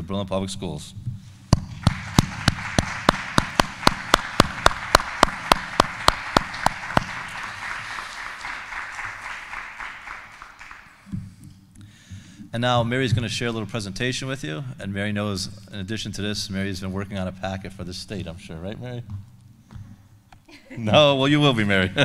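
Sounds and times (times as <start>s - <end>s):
close hand claps: 1.6s - 11.1s
audience applause: 1.7s - 11.1s.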